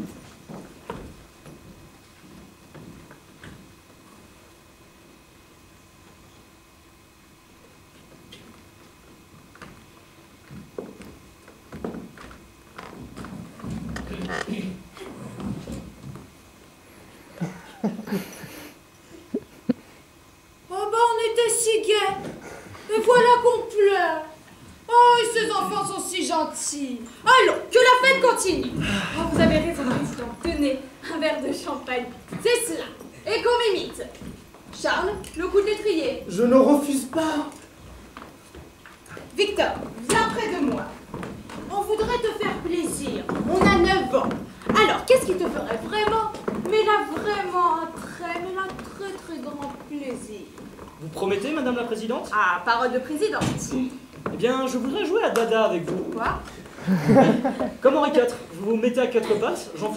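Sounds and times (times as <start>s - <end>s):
footsteps and knocks on wooden floor: 0.0s - 3.7s, 8.0s - 16.4s, 28.6s - 30.7s, 37.1s - 51.0s, 53.4s - 54.6s.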